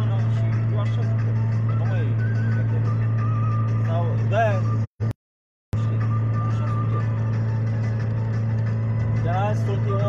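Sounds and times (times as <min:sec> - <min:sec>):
faint music from car stereo: 0:00.0 - 0:04.8, 0:05.8 - 0:10.0
car engine drone: 0:00.0 - 0:10.0
road noise: 0:00.0 - 0:10.0.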